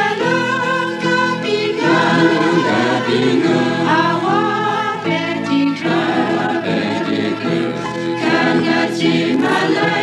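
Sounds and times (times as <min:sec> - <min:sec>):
choir singing a hymn in harmony: 0:00.0 - 0:10.0.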